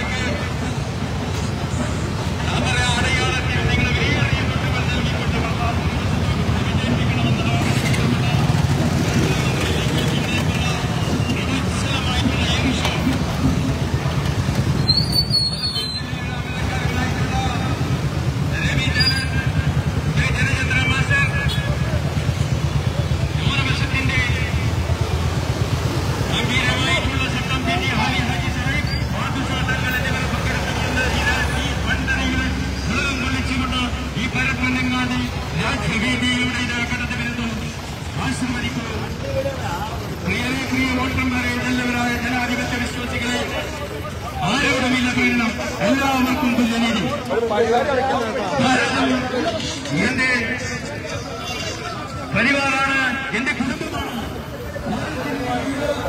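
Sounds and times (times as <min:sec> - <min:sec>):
motorcycle and scooter engines: 0:00.0 - 0:56.0.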